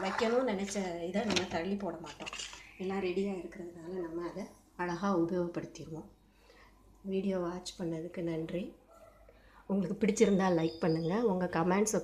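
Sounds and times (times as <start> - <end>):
woman speaking: 0.0 - 6.1, 7.0 - 8.8, 9.7 - 12.0.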